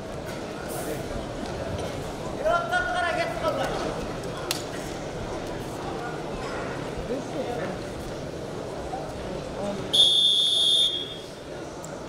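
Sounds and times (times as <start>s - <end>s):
arena crowd hum: 0.0s - 12.0s.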